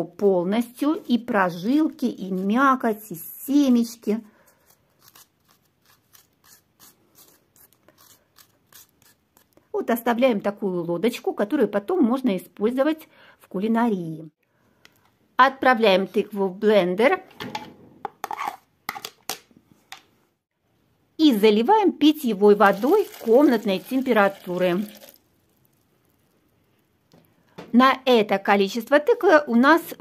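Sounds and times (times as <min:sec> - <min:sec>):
spoon scraping pumpkin: 0:00.7 - 0:09.7, 0:18.2 - 0:19.1.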